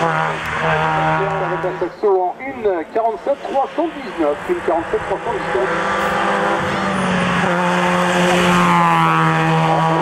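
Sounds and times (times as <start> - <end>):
car engine at high revs: 0.0 - 10.0
man's voice: 0.8 - 5.7.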